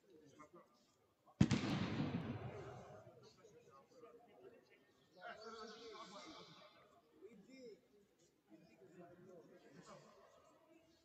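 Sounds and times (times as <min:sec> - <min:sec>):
sharp bang echoing in hall: 0:01.4 - 0:03.0.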